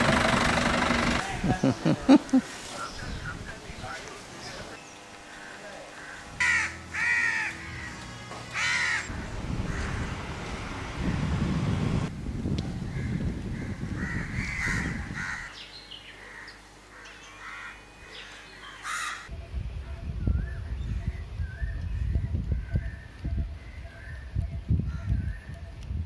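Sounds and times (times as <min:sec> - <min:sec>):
crows cawing: 0:05.3 - 0:09.1, 0:09.7 - 0:10.1, 0:12.9 - 0:15.6, 0:16.2 - 0:17.8, 0:18.7 - 0:19.3.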